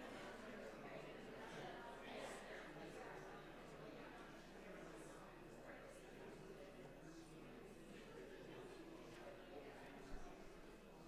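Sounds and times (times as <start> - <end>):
murmur of congregation talking: 0.0 - 11.0.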